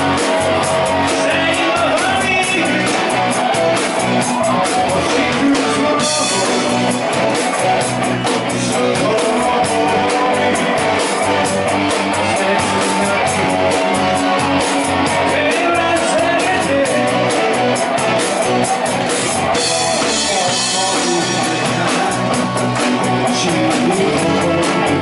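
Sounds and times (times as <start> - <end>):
man singing: 0.0 - 25.0
rock band playing: 0.0 - 25.0.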